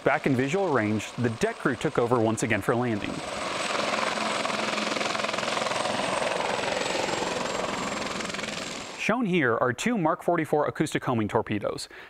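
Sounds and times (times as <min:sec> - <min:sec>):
helicopter rotors whirring: 0:00.0 - 0:09.1.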